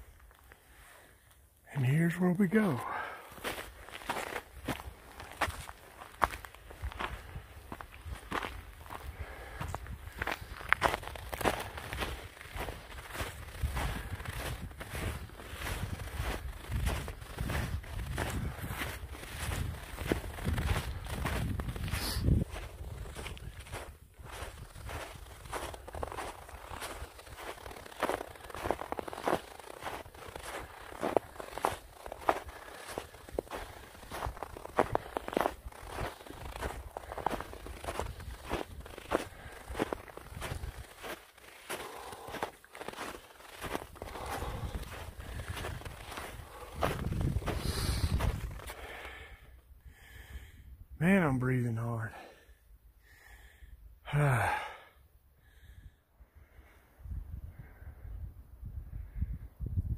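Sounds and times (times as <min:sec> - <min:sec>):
boots crunching on snow: 0:02.4 - 0:49.4.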